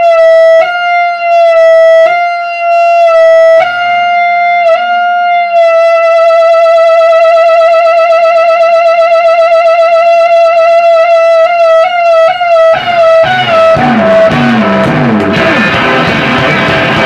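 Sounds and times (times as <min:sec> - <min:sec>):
electric guitar note with vibrato: 0:12.3 - 0:17.0.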